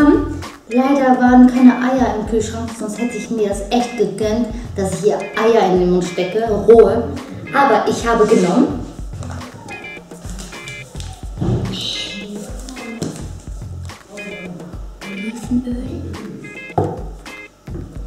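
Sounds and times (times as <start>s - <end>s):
background music with steady beat: 0.0s - 18.0s.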